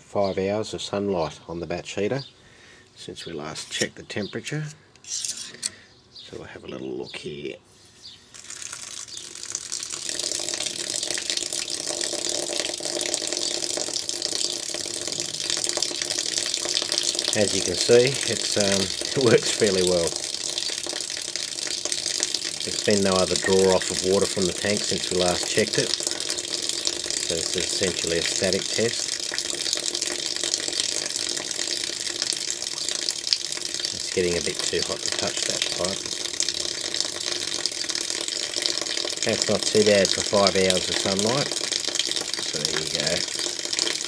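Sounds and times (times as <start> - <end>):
water running from valve: 8.3 - 44.0.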